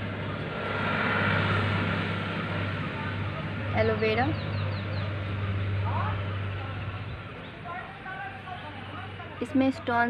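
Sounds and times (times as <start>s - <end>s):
general outdoor noise: 0.0s - 10.0s
steady low hum: 0.0s - 10.0s.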